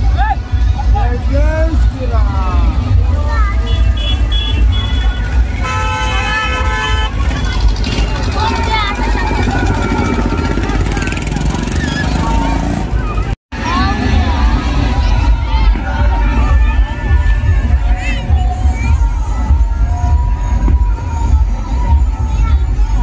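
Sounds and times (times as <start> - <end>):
crowd voices: 0.0 - 23.0
high horn toots: 3.6 - 8.6.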